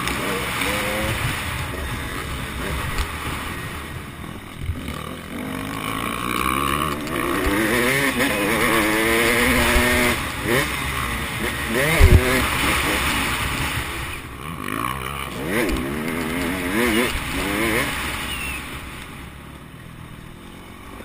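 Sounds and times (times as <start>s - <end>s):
motocross bike engine revving: 0.0s - 21.0s.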